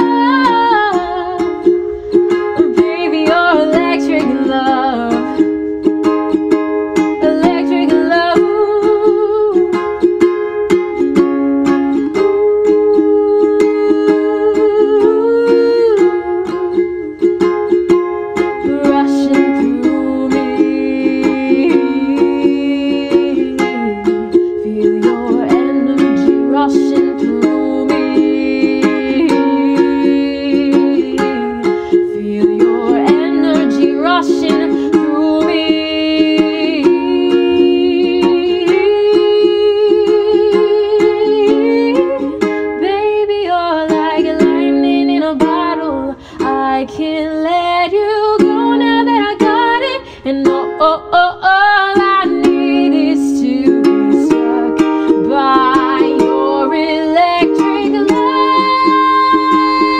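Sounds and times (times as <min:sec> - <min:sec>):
ukulele strumming: 0:00.0 - 0:59.9.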